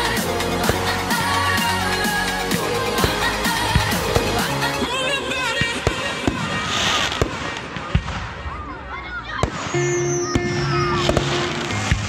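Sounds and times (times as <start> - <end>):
pop song over loudspeakers: 0.0 - 6.9.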